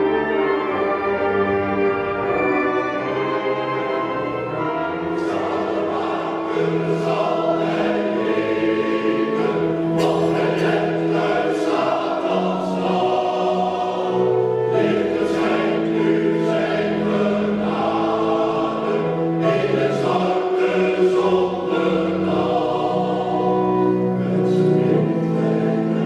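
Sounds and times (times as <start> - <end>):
men's choir singing in harmony: 0.0 - 26.0.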